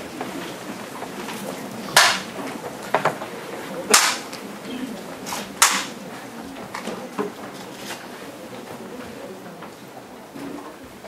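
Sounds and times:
bamboo clapper claps: 0:02.0 - 0:02.3, 0:03.9 - 0:04.4, 0:05.6 - 0:06.0.

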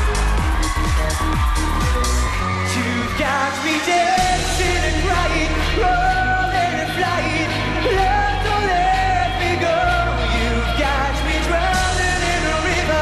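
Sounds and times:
pop backing track with bass: 0:00.0 - 0:13.0.

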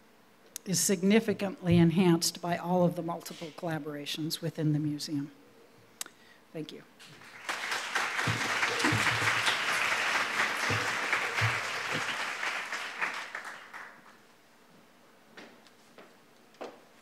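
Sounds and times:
audience applause: 0:07.1 - 0:14.2.

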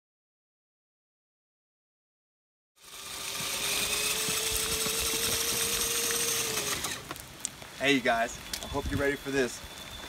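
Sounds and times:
electric motor whining: 0:02.8 - 0:07.2
rain hiss: 0:03.1 - 0:10.0.

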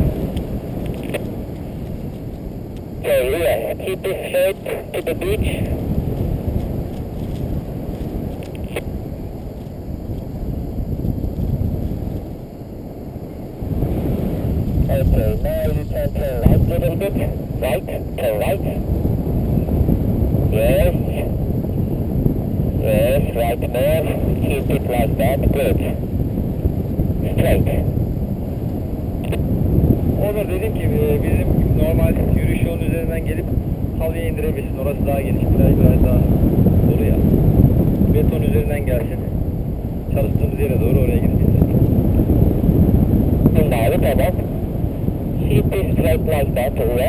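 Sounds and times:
wind rushing over microphone: 0:00.0 - 0:47.0.

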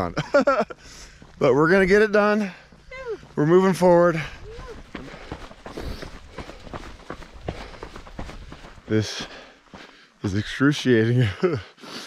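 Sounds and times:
footsteps crunching on dirt trail: 0:00.3 - 0:11.0.

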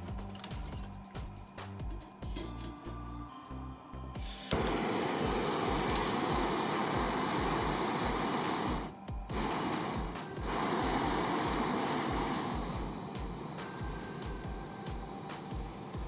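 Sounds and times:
gas stove burner hissing: 0:00.0 - 0:02.8, 0:04.2 - 0:16.0.

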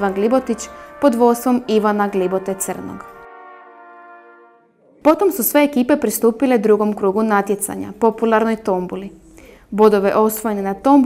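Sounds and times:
trumpets holding sustained chord: 0:00.0 - 0:05.0.

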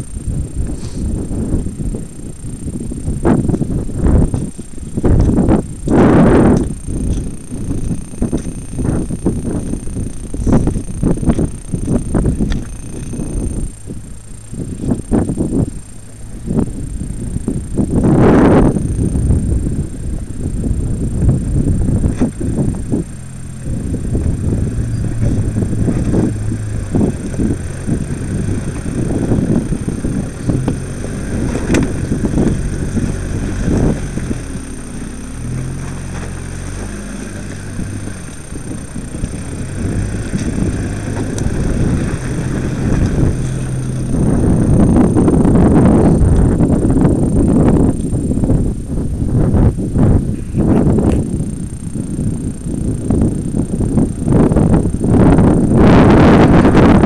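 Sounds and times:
engine working under load: 0:00.0 - 0:57.0
wind buffeting microphone: 0:00.0 - 0:57.0.

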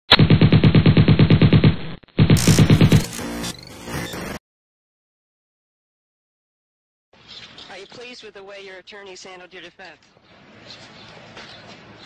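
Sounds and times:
machine-gun fire: 0:00.1 - 0:03.2.

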